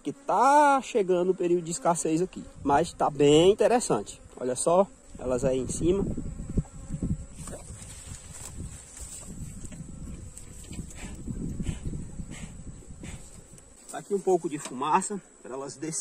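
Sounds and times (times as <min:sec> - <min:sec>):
honeybees buzzing: 0:00.0 - 0:16.0.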